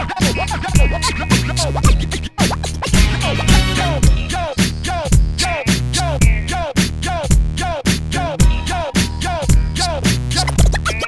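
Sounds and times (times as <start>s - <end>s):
hip hop beat with deep bass: 0.0s - 11.0s
turntable scratching: 0.0s - 11.0s.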